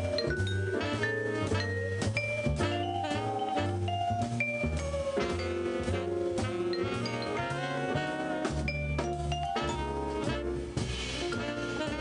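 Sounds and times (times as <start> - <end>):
bass line: 0.0 - 12.0
light drums: 0.0 - 12.0
vibraphone notes: 0.0 - 12.0.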